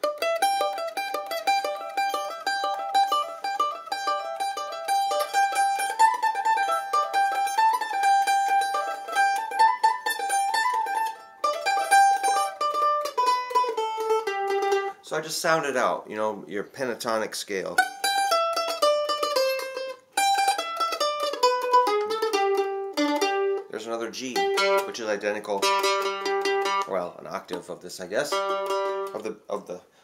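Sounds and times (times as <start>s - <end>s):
mandolin fast picked run: 0.0s - 15.8s, 17.7s - 29.7s.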